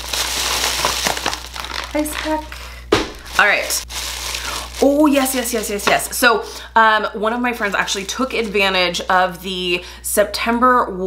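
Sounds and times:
packing material crinkling: 0:00.0 - 0:06.2, 0:07.5 - 0:08.8.

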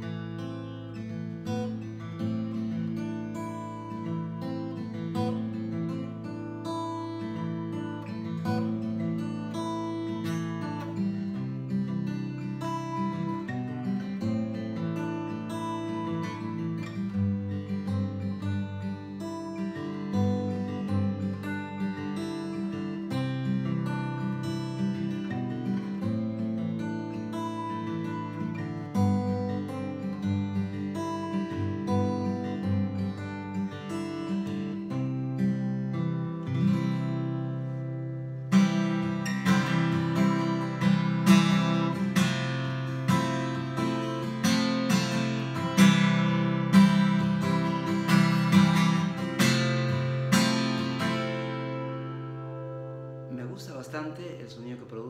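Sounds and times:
acoustic guitar fingerpicked: 0:00.0 - 0:55.0
strummed guitar chords: 0:00.0 - 0:55.0.

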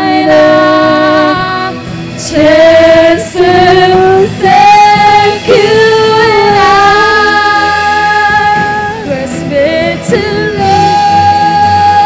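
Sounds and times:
women singing worship song: 0:00.0 - 0:12.0.

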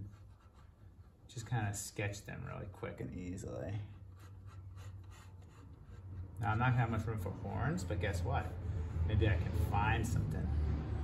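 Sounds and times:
pen scratching on plywood: 0:00.0 - 0:01.2, 0:04.1 - 0:06.4.

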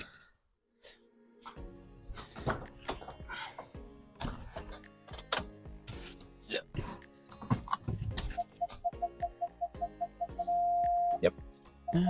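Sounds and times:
parking sensor warning beeps: 0:08.4 - 0:11.2.

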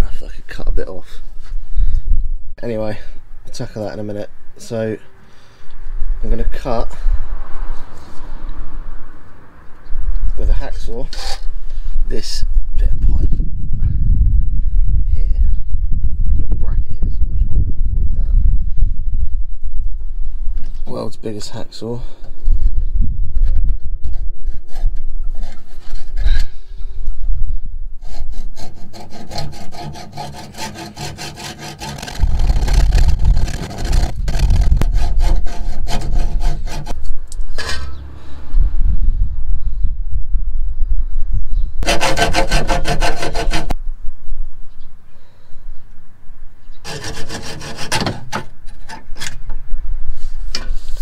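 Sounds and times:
hacksaw cutting metal pipe: 0:28.1 - 0:38.0, 0:41.8 - 0:43.7, 0:46.8 - 0:49.3.

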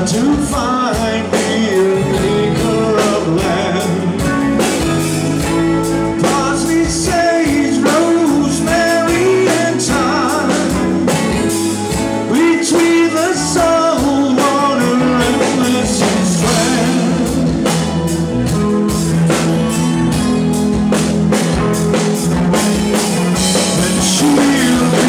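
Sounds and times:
person singing into a microphone: 0:00.0 - 0:04.8, 0:06.1 - 0:18.0, 0:23.4 - 0:25.0
blues-rock band playing: 0:00.0 - 0:25.0.

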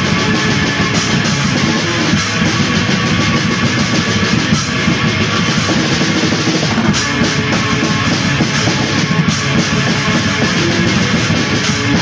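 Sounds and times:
black metal music: 0:00.0 - 0:12.0.

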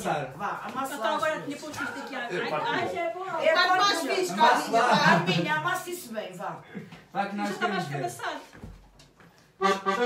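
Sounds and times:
button accordion chords: 0:09.6 - 0:10.0.

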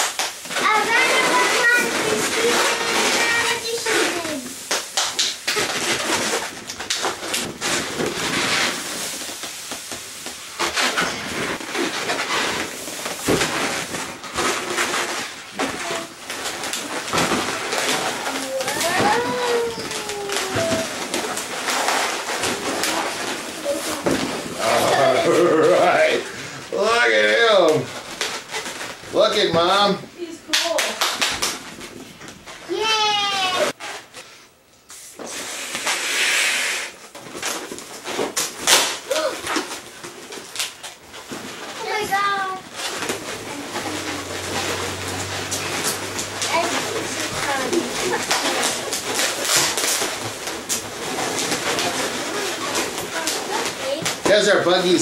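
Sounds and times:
balloons rubbing and squeaking: 0:00.0 - 0:30.0, 0:32.4 - 0:55.0
breath blowing up balloon: 0:34.3 - 0:37.1.

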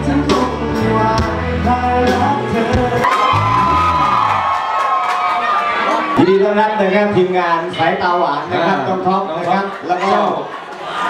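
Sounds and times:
live rock band: 0:00.0 - 0:04.8
audience cheering and whooping: 0:03.0 - 0:06.8.

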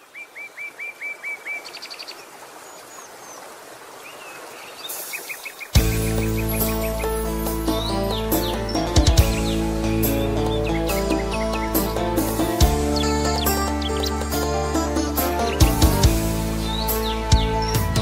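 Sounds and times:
birds chirping: 0:00.0 - 0:18.0
backing music with strong bass: 0:05.8 - 0:18.0.

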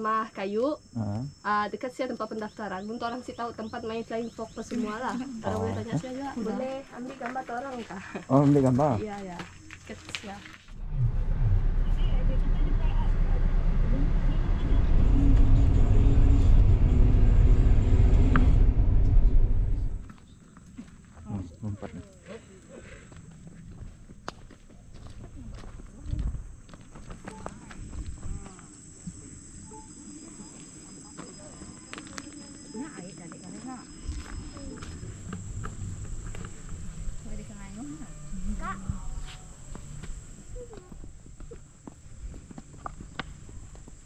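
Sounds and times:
car rumble inside cabin: 0:10.8 - 0:20.1, 0:34.6 - 0:39.1
high-pitched drone: 0:10.8 - 0:20.1.

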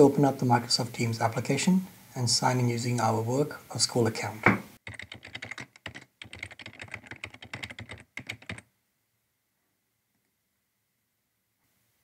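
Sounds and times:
computer keyboard typing: 0:04.8 - 0:08.7.

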